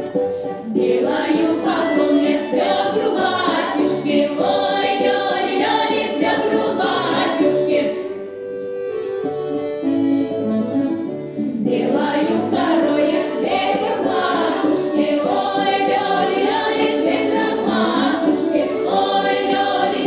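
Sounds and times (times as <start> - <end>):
women singing folk song: 0.5 - 8.2, 11.5 - 20.0.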